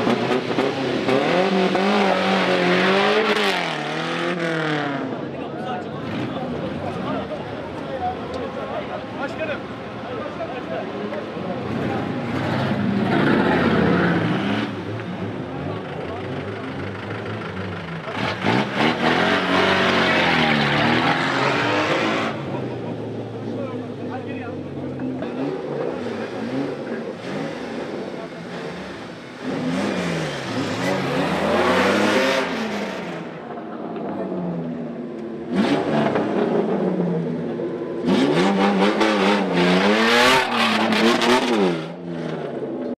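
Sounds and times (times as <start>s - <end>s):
off-road vehicle engines revving: 0.0s - 43.0s.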